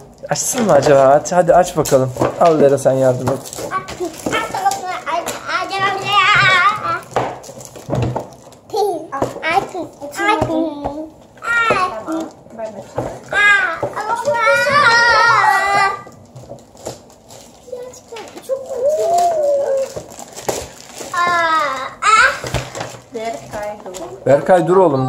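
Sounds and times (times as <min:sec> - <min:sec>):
young children babbling: 0:13.4 - 0:16.1, 0:18.4 - 0:20.0, 0:21.2 - 0:22.5.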